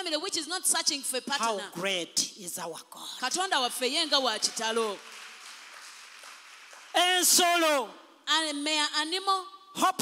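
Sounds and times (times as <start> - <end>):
woman's amplified speech: 0.0 - 1.7, 3.1 - 5.0, 8.3 - 9.6.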